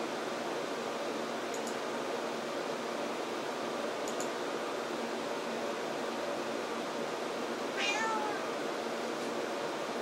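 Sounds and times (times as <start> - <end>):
cat meowing: 7.8 - 8.5.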